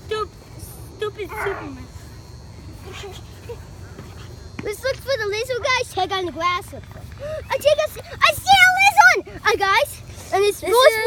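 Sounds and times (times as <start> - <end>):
high-pitched vocal yelps: 1.2 - 1.8.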